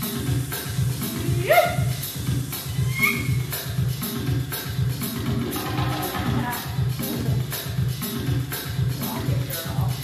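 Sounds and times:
belly dance music with drum beat: 0:00.0 - 0:10.0
sharp high percussive hits: 0:02.8 - 0:07.4.

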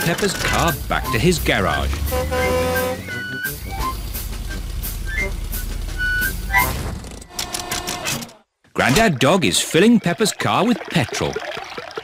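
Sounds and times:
cartoon engine rumble: 0:00.6 - 0:07.2.

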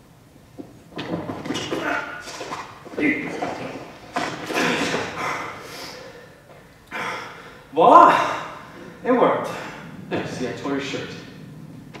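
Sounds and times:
shuffling feet on wooden stage: 0:00.5 - 0:05.6
strained grunts: 0:03.0 - 0:10.4.

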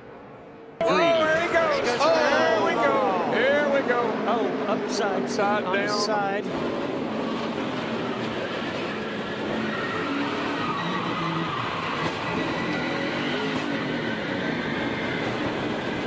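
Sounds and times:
race car engines running: 0:01.2 - 0:16.0.

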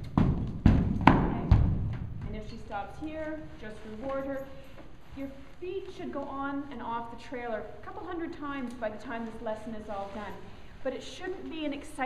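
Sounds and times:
horse hooves thudding on trailer ramp: 0:00.0 - 0:02.7.

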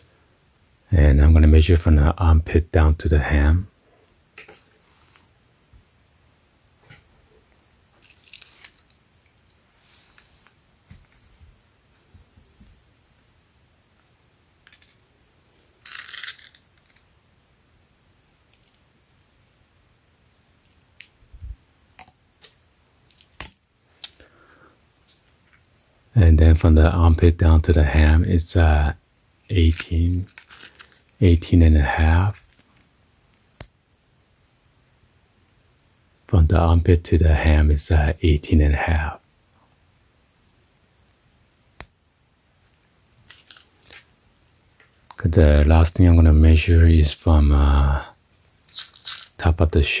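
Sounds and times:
rustling tape measure and fabric: 0:08.0 - 0:11.7, 0:29.7 - 0:31.2, 0:48.4 - 0:49.4.

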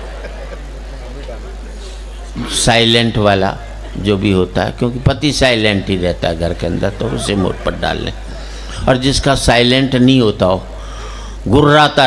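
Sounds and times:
faint audience murmur: 0:00.0 - 0:09.3
sound system hum: 0:00.0 - 0:12.0.

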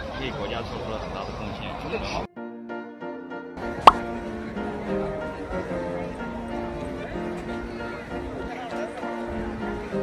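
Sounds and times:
street crowd noise: 0:00.0 - 0:02.3, 0:03.6 - 0:10.0
pop sound effect: 0:03.8 - 0:04.0.

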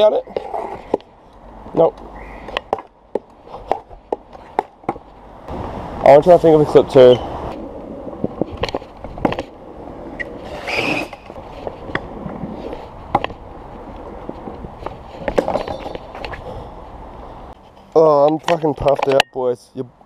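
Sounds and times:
scooter wheels rolling: 0:00.0 - 0:05.3, 0:06.6 - 0:16.9.

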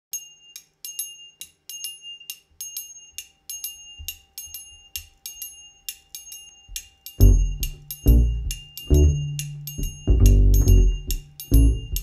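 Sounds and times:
small metal bell struck rhythmically: 0:00.1 - 0:12.0
soft low bass notes: 0:07.2 - 0:12.0.

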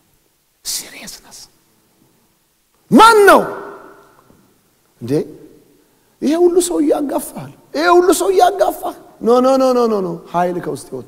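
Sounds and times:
man shouting in echoing hall: 0:02.8 - 0:04.2, 0:06.2 - 0:11.0.

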